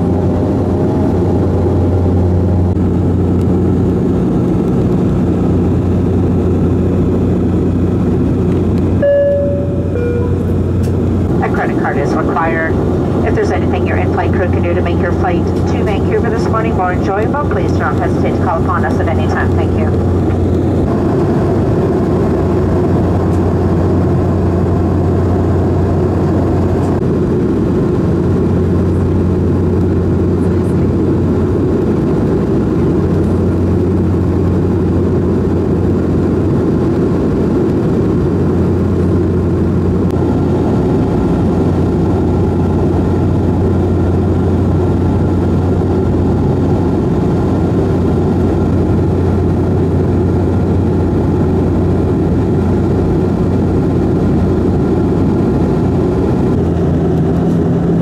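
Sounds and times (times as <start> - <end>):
propeller hum: 0.0 - 58.0.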